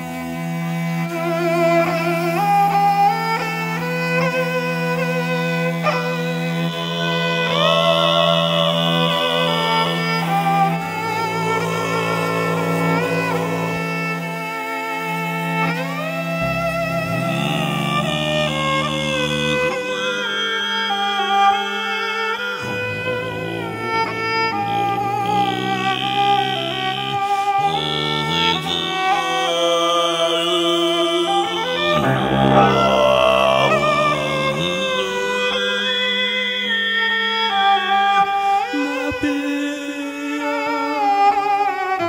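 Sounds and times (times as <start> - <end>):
held drone: 0.0 - 39.9
bowed fiddle folk tune: 0.0 - 42.0
low cello note: 6.6 - 20.4, 22.5 - 29.6, 31.2 - 35.8.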